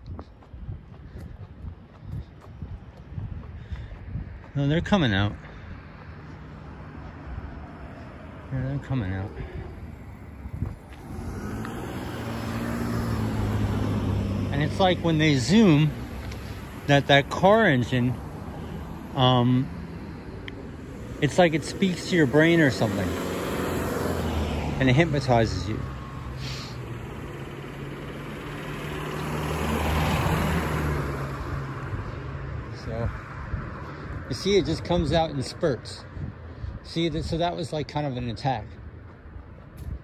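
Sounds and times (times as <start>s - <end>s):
car engine and tyres approaching: 0.0s - 40.0s.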